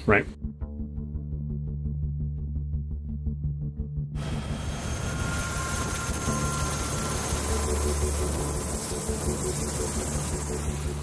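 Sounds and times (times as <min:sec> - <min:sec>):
helicopter engine and rotor noise: 0:04.2 - 0:11.0.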